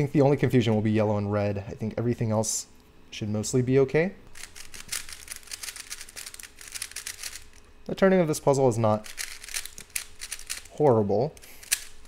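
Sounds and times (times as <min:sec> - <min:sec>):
puzzle cube clicking as turned: 0:04.4 - 0:07.5, 0:09.0 - 0:10.8, 0:11.4 - 0:12.0.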